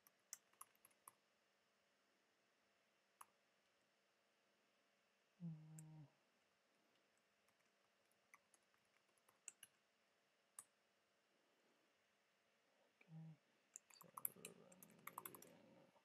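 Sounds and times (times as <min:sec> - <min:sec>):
keyboard typing: 0:00.0 - 0:01.2, 0:08.4 - 0:09.8, 0:13.8 - 0:15.7.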